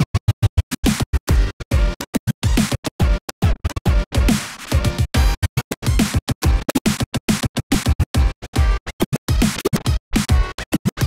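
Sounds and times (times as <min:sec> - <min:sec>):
vinyl scratching: 0:00.0 - 0:11.0.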